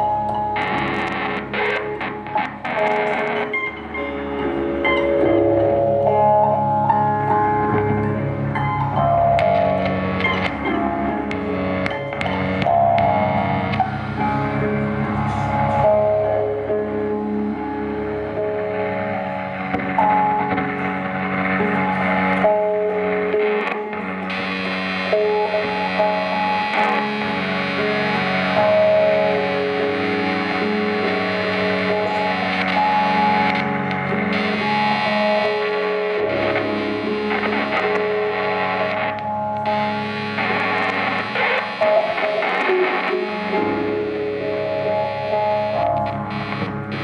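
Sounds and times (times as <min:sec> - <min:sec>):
distorted electric guitar drone: 0:00.0 - 0:47.0.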